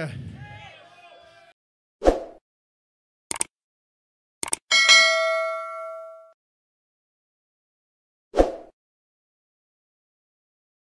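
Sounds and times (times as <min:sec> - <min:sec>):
double mouse click: 0:03.3 - 0:03.5, 0:04.4 - 0:04.6
bell ding: 0:04.7 - 0:06.4.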